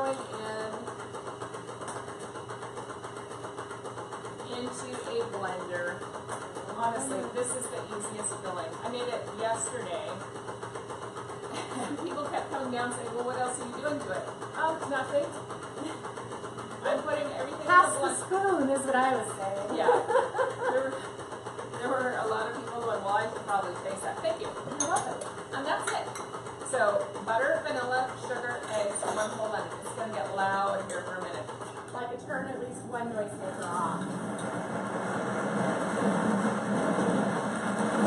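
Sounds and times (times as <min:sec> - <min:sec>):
stand mixer whirring: 0:00.0 - 0:38.0.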